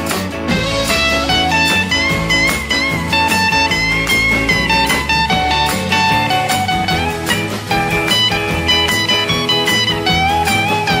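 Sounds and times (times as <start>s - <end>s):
rock and roll band instrumental: 0.0s - 11.0s.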